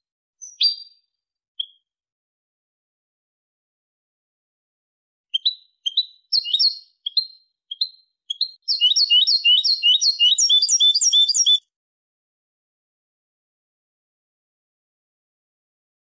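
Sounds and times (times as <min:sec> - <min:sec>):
goldfinch singing: 0:00.4 - 0:01.0, 0:05.3 - 0:11.6.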